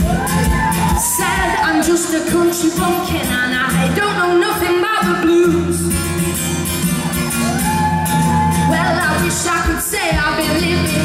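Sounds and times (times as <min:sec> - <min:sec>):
acoustic guitar strumming: 0:00.0 - 0:11.0
person singing: 0:08.5 - 0:11.0.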